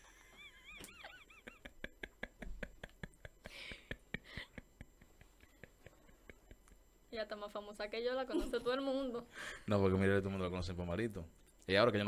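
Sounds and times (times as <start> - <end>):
woman's stifled breathy laugh: 0.0 - 6.6.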